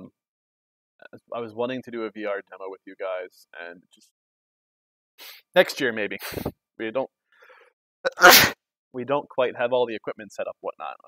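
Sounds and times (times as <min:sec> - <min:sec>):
person sneezing: 0:06.2 - 0:06.5, 0:08.1 - 0:08.6.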